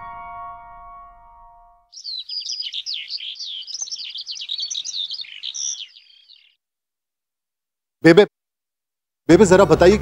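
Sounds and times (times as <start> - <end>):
birds chirping: 1.9 - 6.7.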